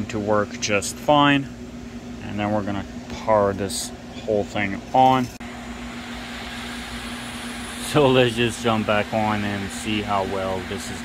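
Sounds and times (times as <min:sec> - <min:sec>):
cooling fans rushing air: 0:00.0 - 0:11.0
low steady hum: 0:00.0 - 0:11.0.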